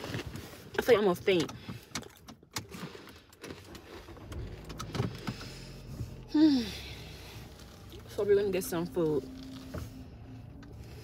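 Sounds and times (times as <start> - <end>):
low steady hum: 3.7 - 11.0.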